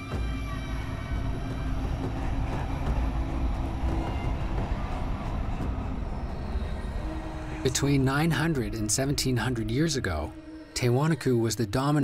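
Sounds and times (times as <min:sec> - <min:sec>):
low rumble: 0:00.1 - 0:11.1.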